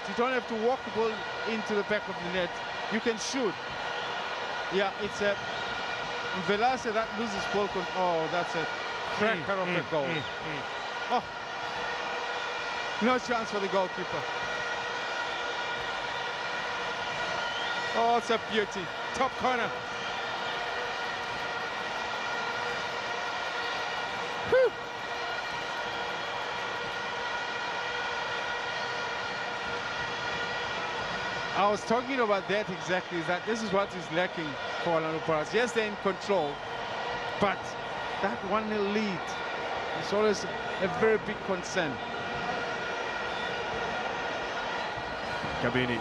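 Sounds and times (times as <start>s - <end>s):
stadium crowd noise: 0.0s - 46.0s.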